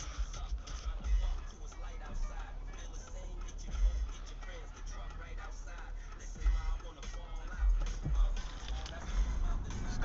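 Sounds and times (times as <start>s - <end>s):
music with deep bass beat: 0.0s - 10.0s.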